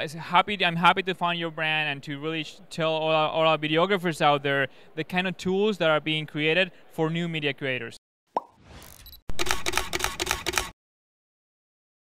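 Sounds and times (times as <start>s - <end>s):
fast run of sharp clicks: 9.3s - 10.8s.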